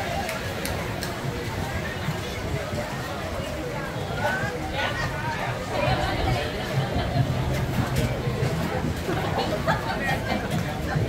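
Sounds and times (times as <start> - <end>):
hubbub of people talking: 0.0 - 11.0
steady low rumble: 5.0 - 11.0.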